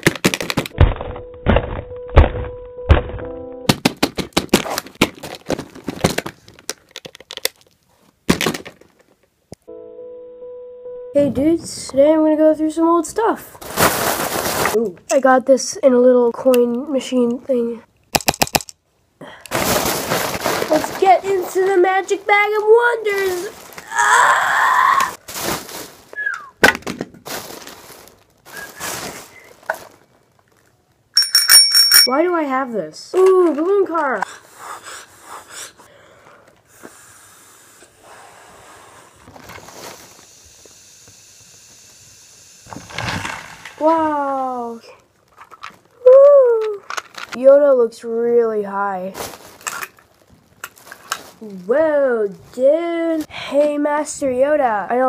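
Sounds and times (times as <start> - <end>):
plastic toy thumping and cracking: 0.0 - 9.3, 18.1 - 18.8, 26.6 - 27.3, 42.7 - 43.9, 45.4 - 47.4
plastic bag rustling: 13.4 - 14.8, 19.5 - 24.2, 25.1 - 26.3, 27.1 - 30.8, 39.2 - 40.2, 46.8 - 47.4, 48.9 - 51.9.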